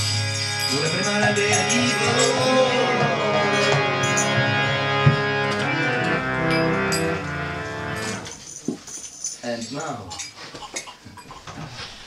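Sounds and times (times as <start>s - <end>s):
harmonium held chord: 0.0s - 8.4s.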